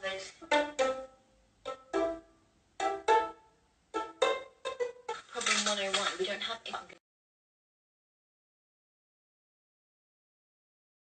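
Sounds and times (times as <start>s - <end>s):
woman talking: 0.0s - 0.4s, 5.3s - 7.0s.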